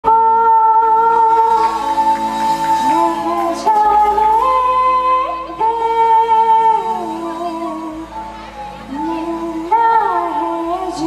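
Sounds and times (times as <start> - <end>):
woman singing long note: 0.0 - 8.1
lower accompanying notes: 0.1 - 11.0.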